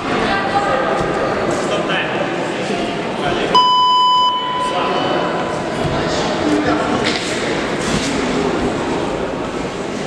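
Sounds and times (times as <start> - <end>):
echoing indistinct voices: 0.0 - 10.0.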